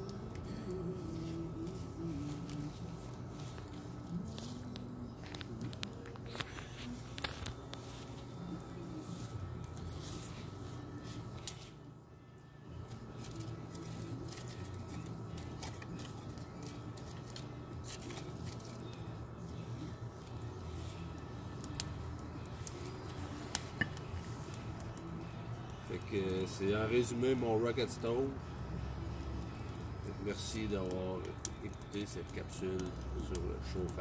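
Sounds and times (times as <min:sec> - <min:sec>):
wood fire rumbling and crackling: 0:00.0 - 0:34.0.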